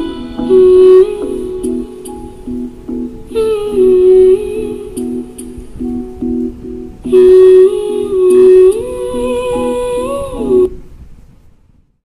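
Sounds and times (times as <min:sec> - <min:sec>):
softly plucked chords: 0:00.0 - 0:10.7
person humming gliding melody: 0:00.0 - 0:10.8.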